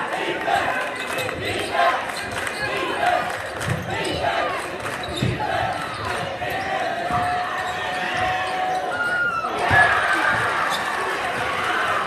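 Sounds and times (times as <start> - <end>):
crowd and players' voices: 0.0 - 12.0.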